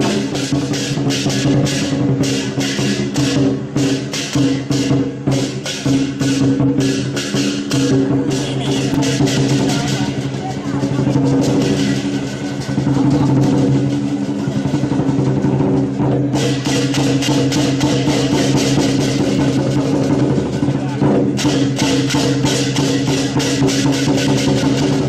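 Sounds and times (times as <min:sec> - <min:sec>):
cymbal strikes: 0:00.0 - 0:20.4, 0:21.0 - 0:25.0
rapid drum strikes: 0:00.0 - 0:25.0.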